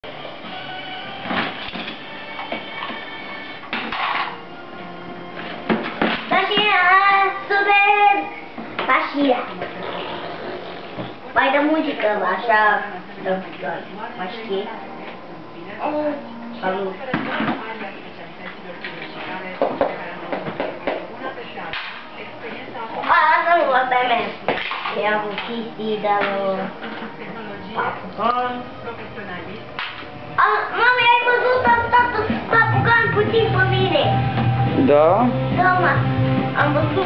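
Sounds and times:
music playing: 0:00.0 - 0:07.6, 0:24.6 - 0:37.0
child's voice: 0:06.3 - 0:09.5, 0:23.0 - 0:26.7, 0:30.4 - 0:34.1, 0:35.6 - 0:36.0, 0:36.6 - 0:37.0.

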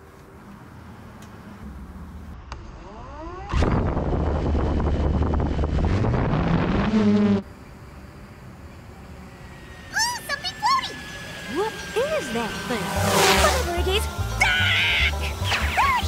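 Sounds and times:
drone motors whining: 0:00.5 - 0:16.0.

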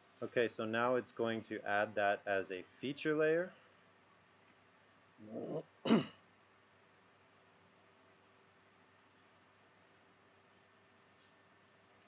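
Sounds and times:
person clearing throat: 0:05.2 - 0:06.2
person coughing: 0:05.5 - 0:06.2.

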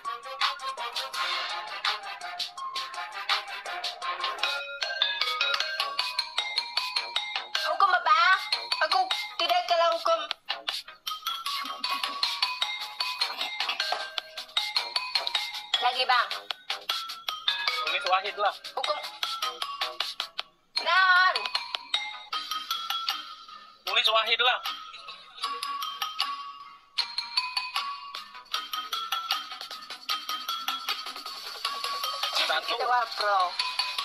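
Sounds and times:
electronic mobile game music: 0:00.0 - 0:34.0.

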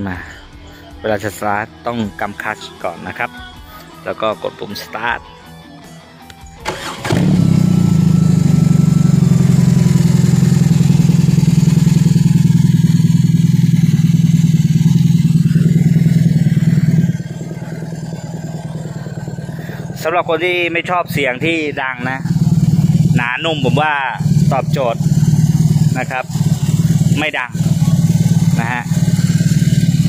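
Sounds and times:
motorcycle engine cranking: 0:06.6 - 0:12.2
motorcycle engine idling: 0:06.7 - 0:30.0.

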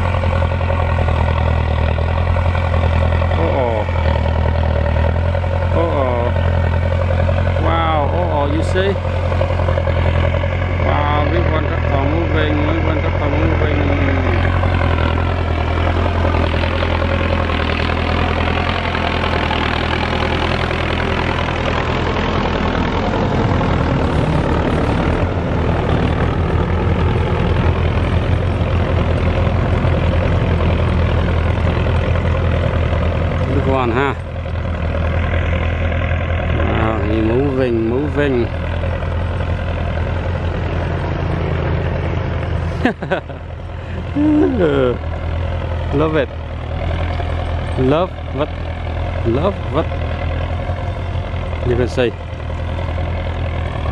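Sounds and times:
tractor diesel engine under load: 0:00.0 - 0:53.9.

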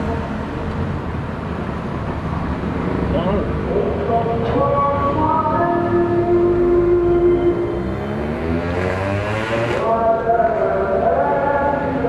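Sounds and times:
person chanting long notes: 0:09.3 - 0:11.6.

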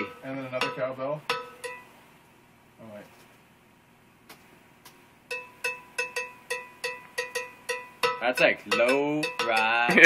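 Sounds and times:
cowbell rhythm: 0:00.0 - 0:02.0, 0:05.3 - 0:10.0.

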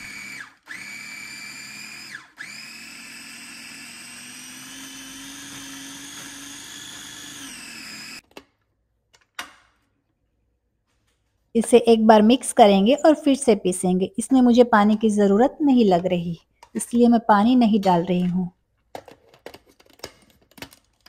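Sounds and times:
food processor motor running: 0:00.0 - 0:08.2.

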